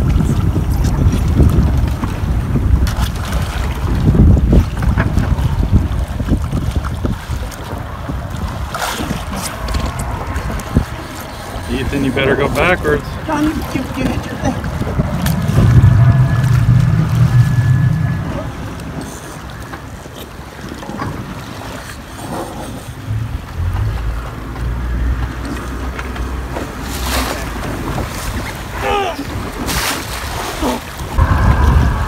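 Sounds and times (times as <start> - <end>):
wind buffeting microphone: 0.0 - 22.1, 27.4 - 32.0
water sloshing: 0.0 - 31.6
boat engine idling: 9.5 - 29.6.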